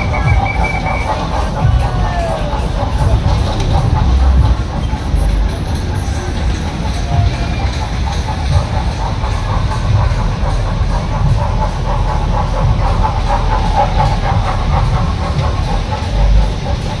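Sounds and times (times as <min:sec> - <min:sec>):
funfair noise: 0:00.0 - 0:17.0
roundabout rumbling and clattering: 0:00.0 - 0:17.0.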